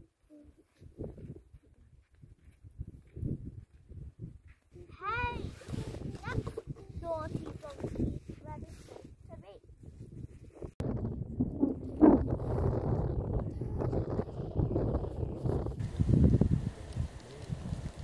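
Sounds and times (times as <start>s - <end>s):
wind buffeting microphone: 0.8s - 18.0s.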